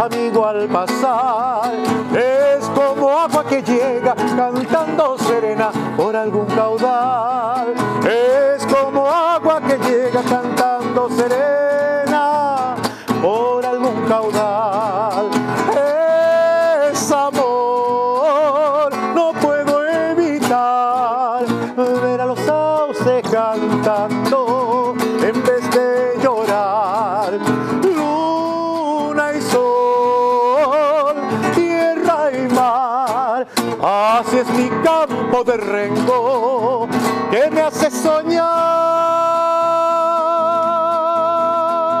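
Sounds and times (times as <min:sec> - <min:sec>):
classical guitar strumming: 0:00.0 - 0:42.0
man singing with vibrato: 0:00.0 - 0:42.0.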